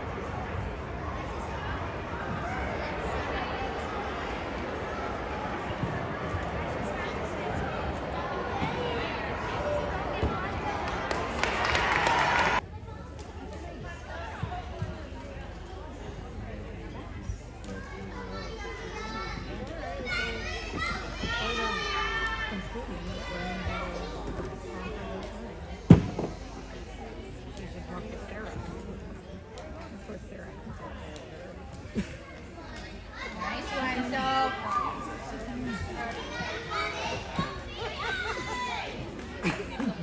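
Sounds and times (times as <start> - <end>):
chatter of children and adults: 0.0 - 40.0
children's voices chattering and calling: 31.9 - 40.0.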